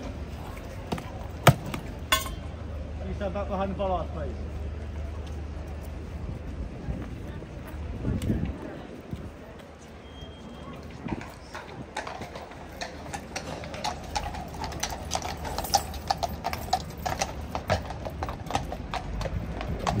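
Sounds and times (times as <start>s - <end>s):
hooves clip-clopping on stone: 10.7s - 20.0s.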